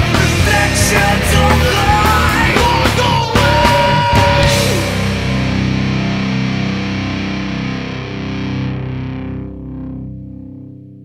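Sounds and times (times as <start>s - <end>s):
distorted electric guitar chord: 0.0s - 11.0s.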